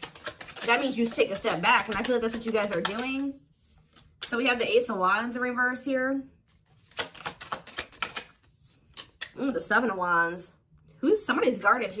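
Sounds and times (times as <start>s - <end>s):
cards shuffling: 0.0s - 4.4s, 6.5s - 9.3s
card snapping: 6.8s - 8.4s.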